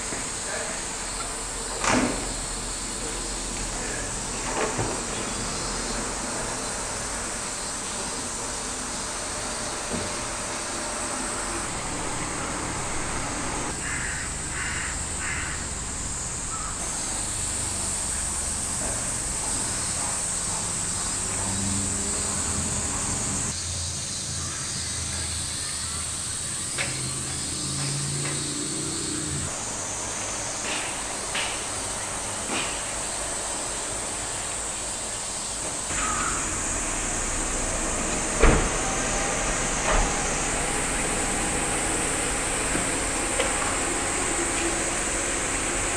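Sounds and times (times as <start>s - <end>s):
insects droning: 0.0s - 45.9s
crow calling: 13.7s - 15.9s, 16.5s - 16.8s, 35.9s - 36.6s.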